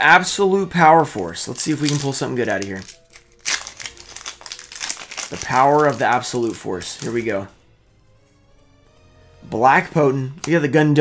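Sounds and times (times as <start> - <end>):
foil wrapper tearing and crinkling: 1.5 - 7.5.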